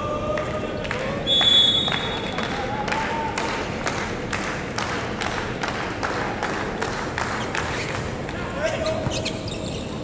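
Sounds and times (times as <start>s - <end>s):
rhythmic clapping: 0.2s - 8.5s.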